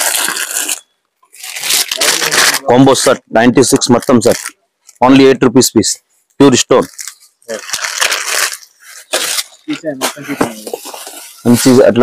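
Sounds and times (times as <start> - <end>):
plastic packaging crinkling: 0.0 - 3.1, 6.8 - 12.0.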